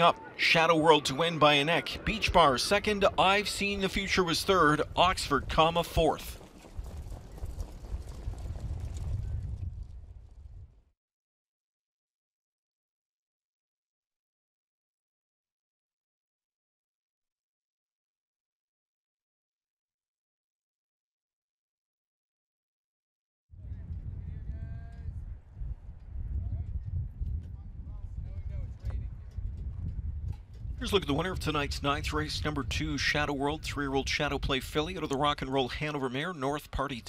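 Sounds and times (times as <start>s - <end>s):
heavy low rumble: 1.0s - 10.8s, 23.6s - 35.2s
hoofbeats on dirt track: 4.0s - 10.6s, 23.8s - 33.2s
hooves clopping lightly: 4.9s - 9.9s.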